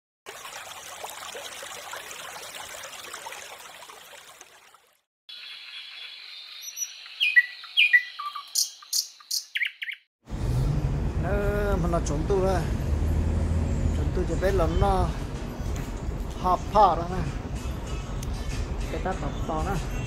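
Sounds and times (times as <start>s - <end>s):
birds singing: 5.3s - 10.1s.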